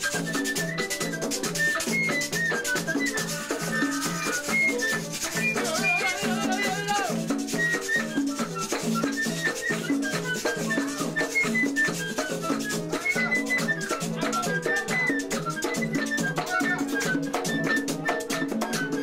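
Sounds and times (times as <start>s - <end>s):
flute melody: 0.0s - 19.0s
shaker percussion: 0.0s - 19.0s.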